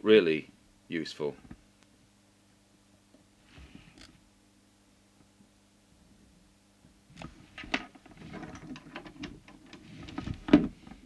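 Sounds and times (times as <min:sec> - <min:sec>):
faint steady hum: 0:00.0 - 0:11.0
soft rustle: 0:09.5 - 0:11.0.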